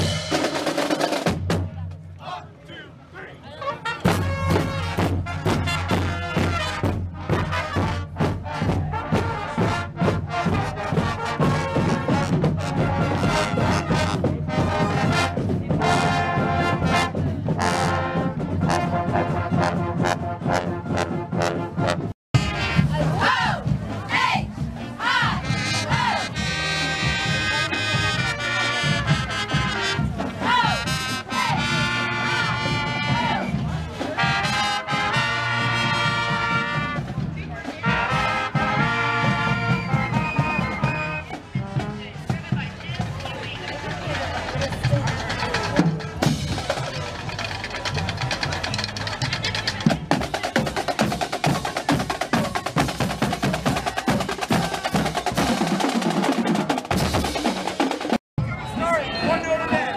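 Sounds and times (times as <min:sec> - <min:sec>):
marching drums: 0:00.0 - 0:02.4, 0:03.9 - 0:59.9
brass band tune: 0:00.0 - 0:59.9.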